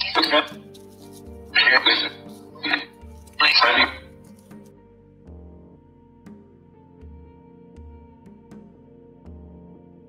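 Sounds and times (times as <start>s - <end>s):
rough noisy voice-like bursts: 0.0s - 0.6s, 1.6s - 4.0s
soft background music: 0.0s - 10.0s.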